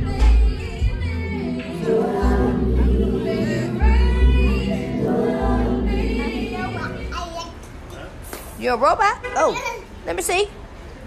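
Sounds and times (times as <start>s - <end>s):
woman singing into a microphone: 0.0s - 7.1s.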